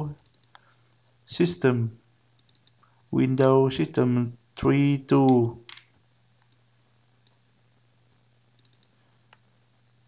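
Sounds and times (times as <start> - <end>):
computer mouse clicks: 0.2 - 0.7, 2.4 - 2.9, 5.7 - 6.6, 8.6 - 9.4.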